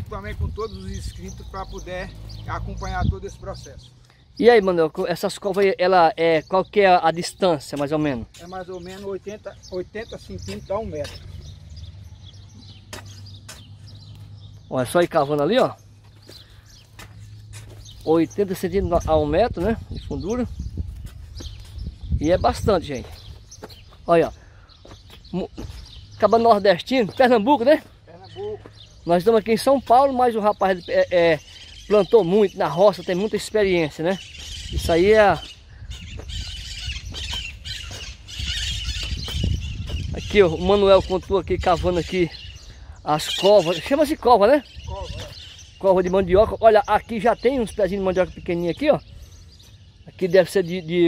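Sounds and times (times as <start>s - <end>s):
wind rumbling on microphone: 0.0s - 4.0s, 16.7s - 24.4s, 34.2s - 43.0s, 44.2s - 49.5s.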